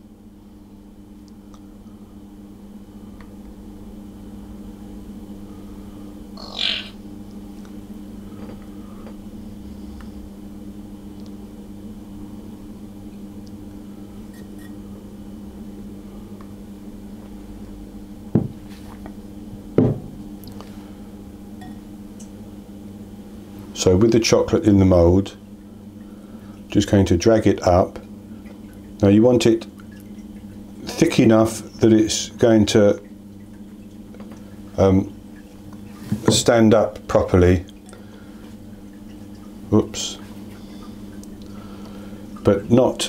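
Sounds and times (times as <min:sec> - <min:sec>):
steady low hum: 0:00.0 - 0:43.0.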